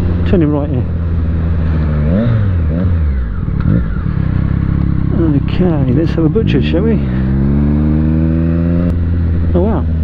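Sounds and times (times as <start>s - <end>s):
motorcycle engine: 0.0s - 10.0s.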